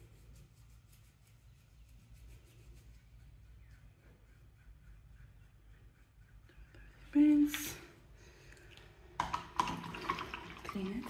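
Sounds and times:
paintbrush rinsed in water: 8.5 - 11.0.

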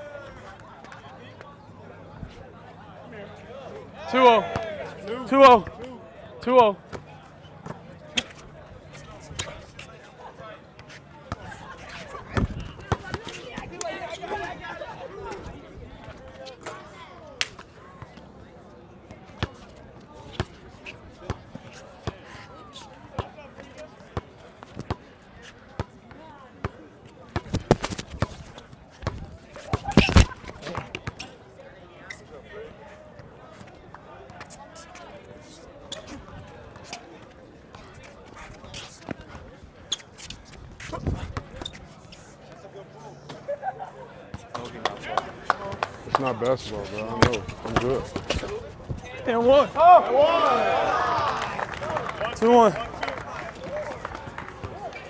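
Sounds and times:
murmur of spectators talking: 0.0 - 55.0.

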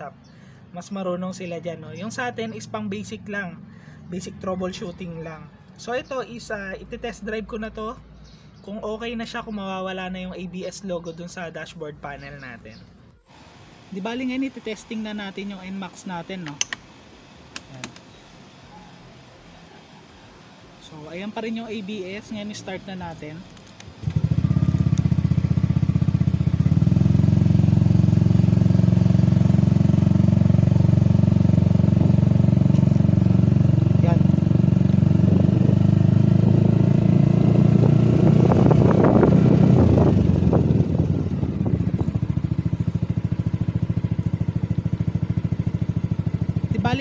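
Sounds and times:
scooter engine running: 23.9 - 47.0.

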